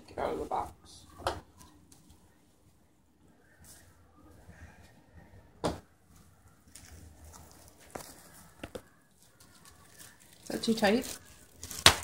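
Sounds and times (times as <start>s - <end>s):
plastic wrap crinkling: 6.1s - 12.0s
plastic wrap crackles: 6.2s - 12.0s.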